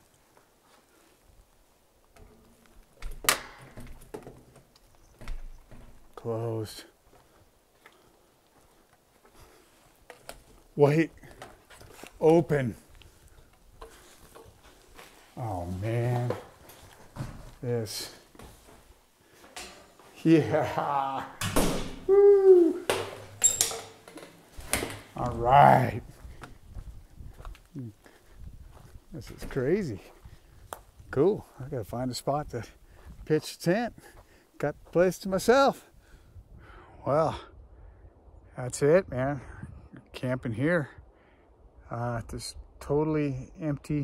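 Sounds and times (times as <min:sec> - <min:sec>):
metal door latch clacking: 0:03.0 - 0:04.4, 0:22.9 - 0:25.1.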